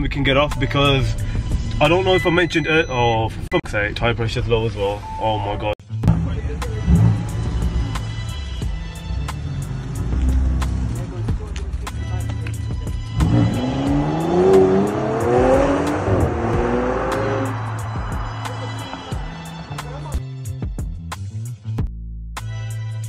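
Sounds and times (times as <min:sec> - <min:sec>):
background music with steady beat: 0:05.1 - 0:23.0
car engine revving: 0:06.0 - 0:20.3.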